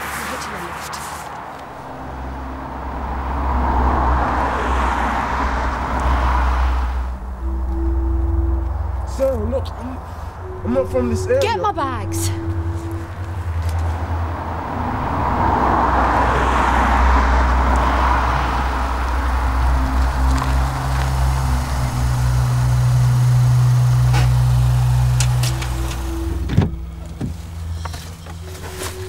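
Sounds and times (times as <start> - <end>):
car approaching: 0.0 - 29.0
engine low hum: 1.5 - 29.0.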